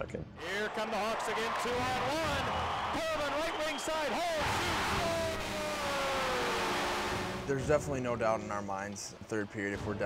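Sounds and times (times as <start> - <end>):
arena crowd cheering: 0.4 - 7.5
goal horn long tone: 4.4 - 7.6.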